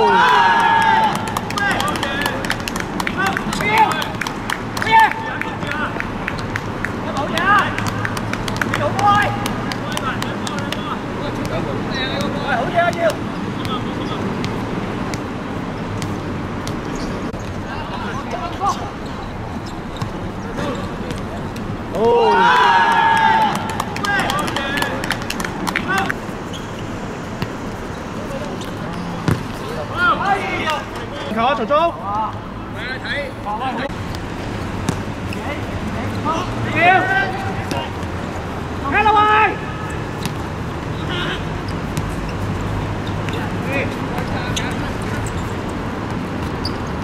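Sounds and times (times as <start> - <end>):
players calling out: 0.0 - 47.0
sharp taps and knocks: 1.2 - 11.5
ball being kicked: 28.4 - 29.7, 34.0 - 35.4.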